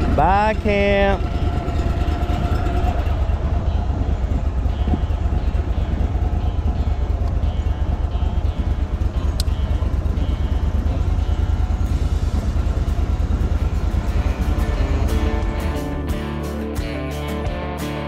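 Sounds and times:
outboard motor running: 0.0s - 16.2s.

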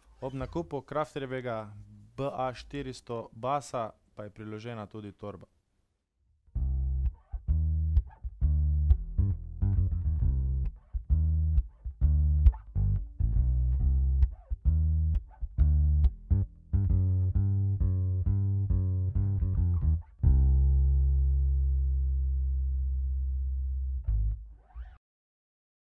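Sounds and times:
plucked acoustic bass guitar: 6.5s - 25.0s.

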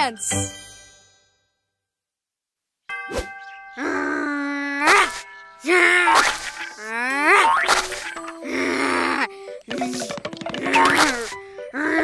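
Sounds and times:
cartoon dinosaur groaning: 3.8s - 6.2s, 8.4s - 9.3s, 10.7s - 12.0s.

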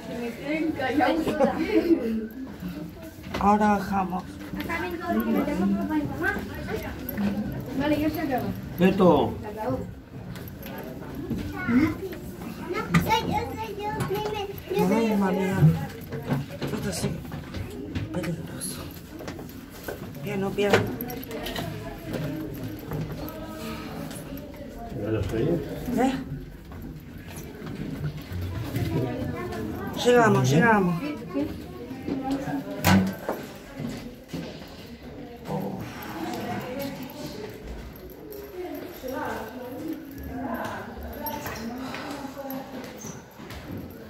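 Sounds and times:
footsteps down stairs: 1.1s - 44.0s
footsteps on metal stairs: 10.5s - 23.4s.

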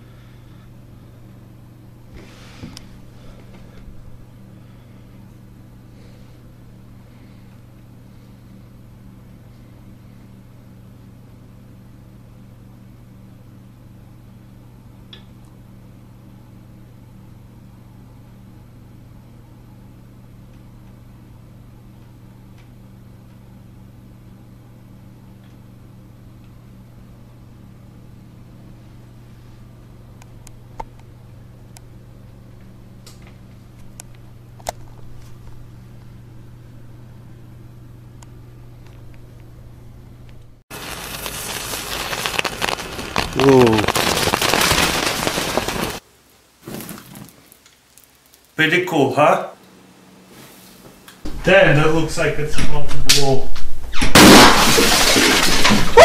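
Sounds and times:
low machine-like hum: 0.0s - 41.6s
crackling and fizzing sparks: 40.3s - 48.9s.

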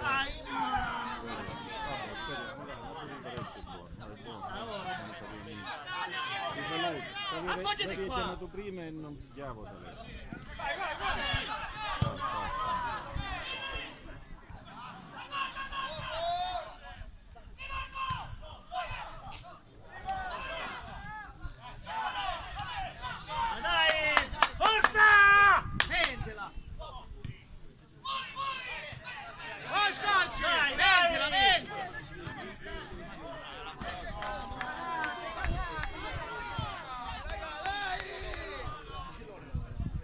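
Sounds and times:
voices shouting and calling out: 0.0s - 40.0s.

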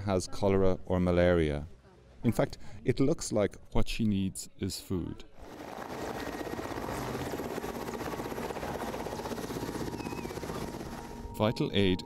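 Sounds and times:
helicopter rotor chopping: 5.4s - 11.4s.

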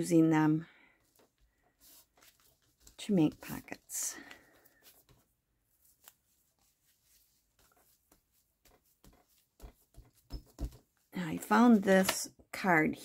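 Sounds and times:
paper and card handling: 1.0s - 12.3s.

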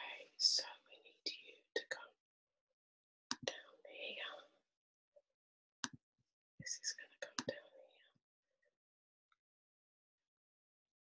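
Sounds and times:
person whispering: 0.0s - 2.1s, 3.4s - 4.5s, 6.6s - 8.1s.

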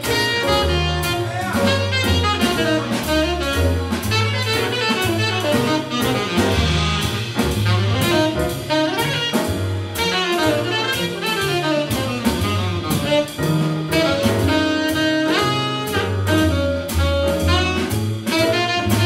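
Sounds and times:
jazz ensemble playing blues: 0.0s - 19.0s.

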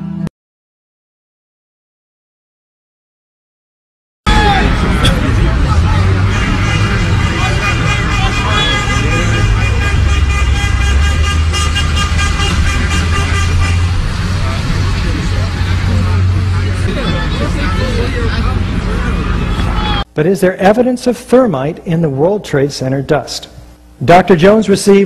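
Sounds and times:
high-pitched horn-like tone: 4.3s - 14.6s
vehicles running: 4.3s - 20.2s
voices: 4.3s - 25.0s.

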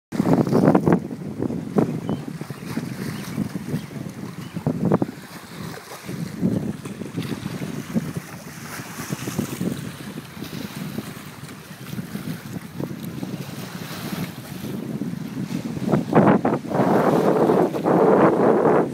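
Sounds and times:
small waves lapping rocks: 0.2s - 14.8s
wind gusting on microphone: 0.2s - 18.9s.

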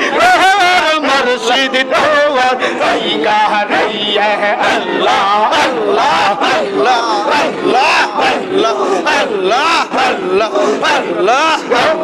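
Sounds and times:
amplified voice leading chant: 0.0s - 12.0s
crowd of men chanting: 0.0s - 12.0s.

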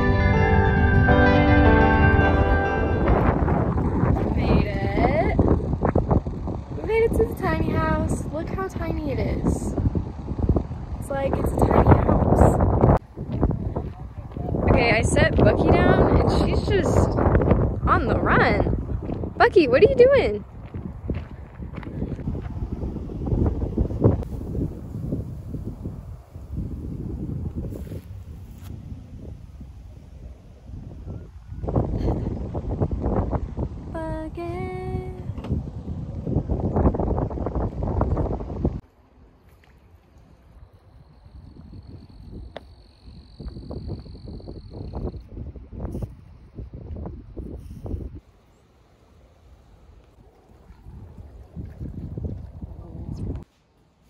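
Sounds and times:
wind buffeting microphone: 0.0s - 38.8s, 40.2s - 48.5s, 49.2s - 53.5s.

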